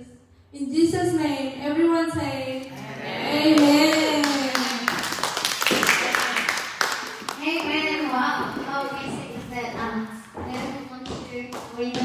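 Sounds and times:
woman speaking into a microphone: 0.0s - 4.9s
scattered hand claps: 3.6s - 9.4s, 10.5s - 12.0s.

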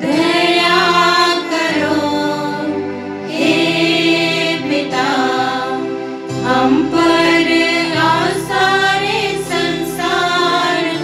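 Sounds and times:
instrumental accompaniment: 0.0s - 11.0s
person singing a hymn: 0.0s - 11.0s.

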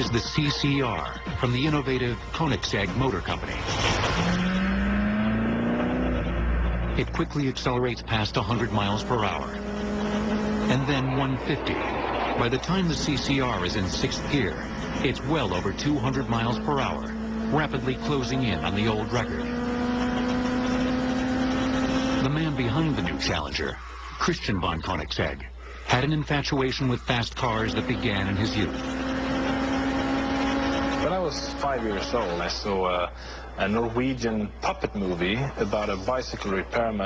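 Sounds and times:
car engine accelerating hard: 0.0s - 24.2s, 26.0s - 37.0s
wind and road noise: 1.7s - 24.3s, 26.8s - 33.0s
steady rush of noise: 10.3s - 15.9s.

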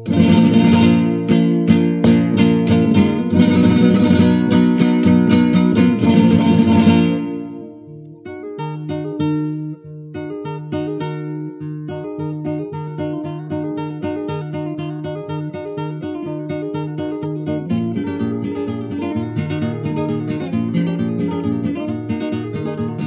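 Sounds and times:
solo flamenco guitar: 0.0s - 23.0s.

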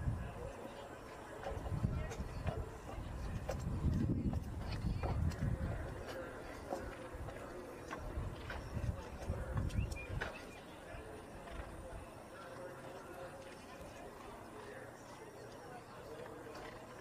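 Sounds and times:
horse hoofbeats cantering: 1.2s - 17.0s.

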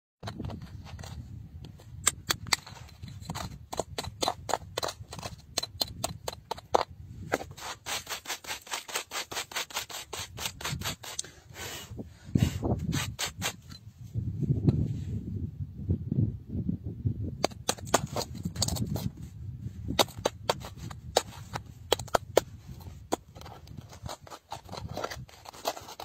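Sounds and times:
metal chisel chipping stone: 1.8s - 11.4s, 12.5s - 13.8s, 17.4s - 19.2s, 19.9s - 26.0s.

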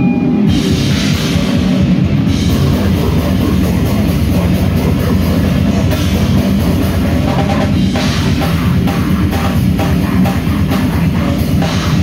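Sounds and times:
death metal band playing loud: 0.0s - 12.0s.

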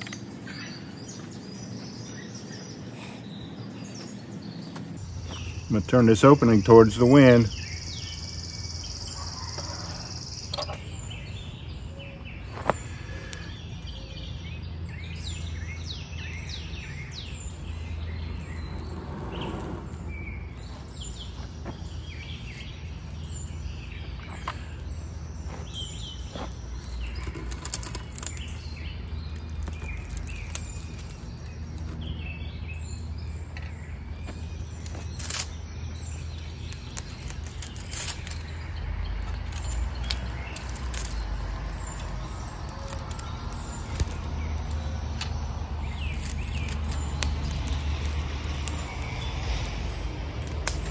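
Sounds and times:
songbirds chirping: 0.0s - 50.9s
steady low rumble: 13.1s - 34.9s.

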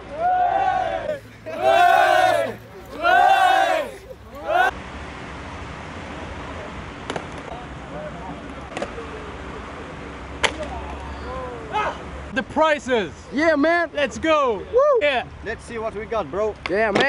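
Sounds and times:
young men yelling and cheering: 0.0s - 4.8s
faint voices: 1.1s - 4.7s.

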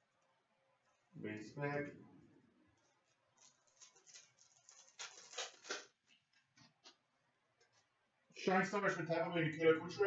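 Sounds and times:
trading cards rustling: 2.8s - 6.2s.

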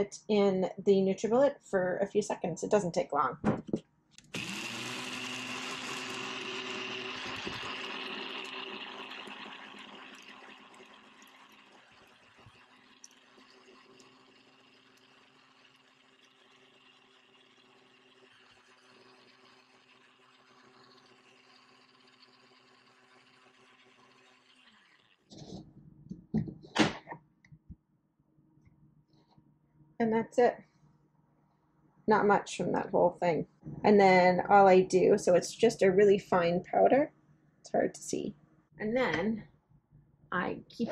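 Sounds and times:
blender grinding eggshells: 4.2s - 25.4s.

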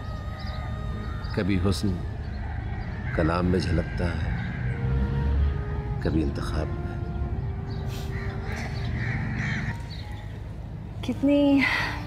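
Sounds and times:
crow cawing: 0.2s - 5.1s, 8.0s - 10.3s.

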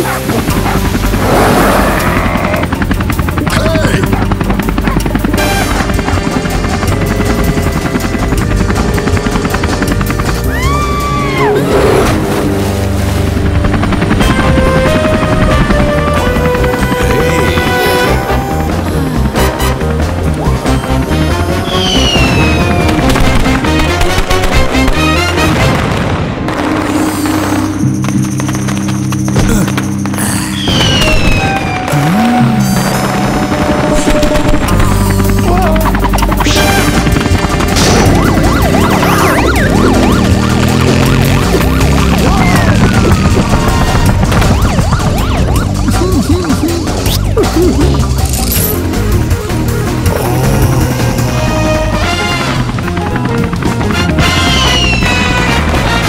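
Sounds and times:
helicopter rotor chopping: 0.0s - 26.4s, 27.0s - 56.0s
orchestral music: 0.0s - 56.0s
police siren yelp: 10.4s - 11.8s, 16.7s - 19.6s, 20.4s - 23.4s, 35.5s - 48.2s
high falling tone: 37.8s - 48.9s.

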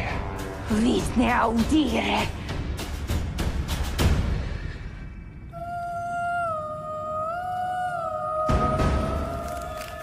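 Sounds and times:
woman singing long wordless note: 5.5s - 10.0s.

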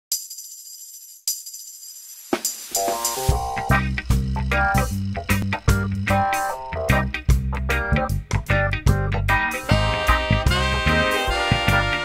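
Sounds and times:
jingling percussion strokes: 0.1s - 8.2s.

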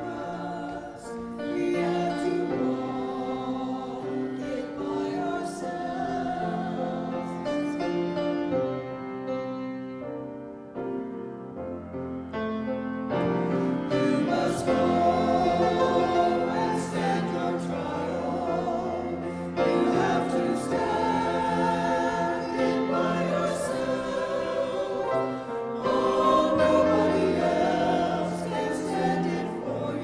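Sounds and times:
church choir singing: 0.0s - 30.0s
grand piano accompaniment: 0.0s - 30.0s.

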